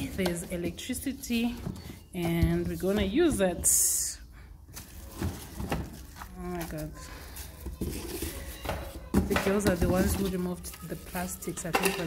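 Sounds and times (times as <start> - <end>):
plastic parts handled in cardboard box: 4.7 - 12.0.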